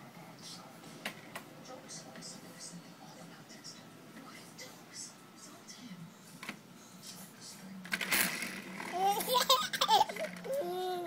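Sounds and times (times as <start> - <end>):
baby laughing: 8.9 - 11.0.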